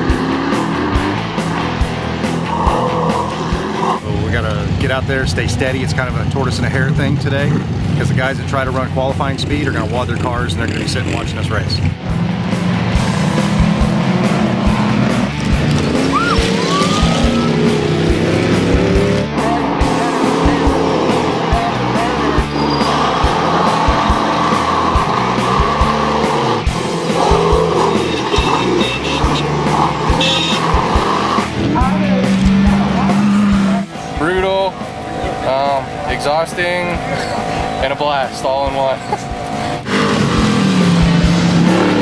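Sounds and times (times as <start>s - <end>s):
race car engines revving: 0.0s - 42.0s
music with steady beat: 12.0s - 36.0s.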